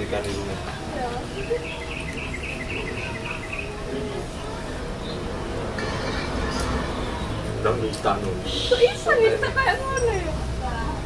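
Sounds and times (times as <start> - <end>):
rapid high chirps: 1.4 - 3.8.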